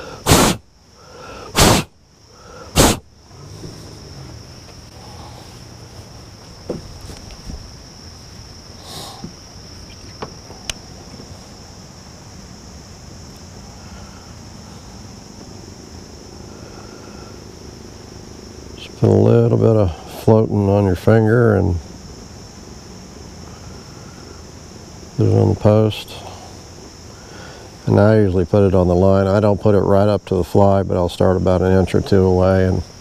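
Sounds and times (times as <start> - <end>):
loud thumps: 0.0 - 0.7, 1.6 - 2.0, 2.7 - 4.8, 6.6 - 7.7
insect chorus drone: 0.0 - 33.0.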